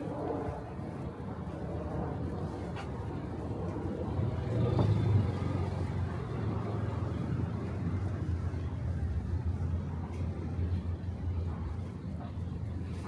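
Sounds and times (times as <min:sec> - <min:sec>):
street low rumble: 0:00.0 - 0:13.0.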